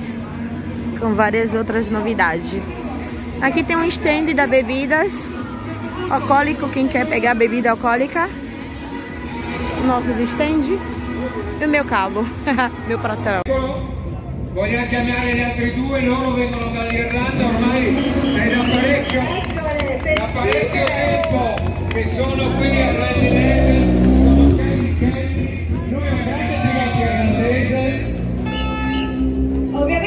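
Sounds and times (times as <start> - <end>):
crowd chatter: 0.0 - 30.0
rally car engine revving: 17.0 - 19.6, 20.3 - 30.0.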